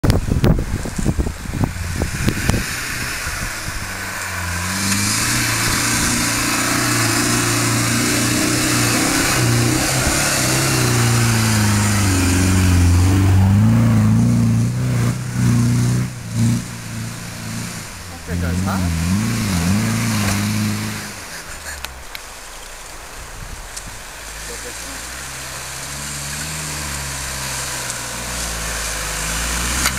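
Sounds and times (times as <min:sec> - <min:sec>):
pickup engine revving: 0:00.0 - 0:29.9.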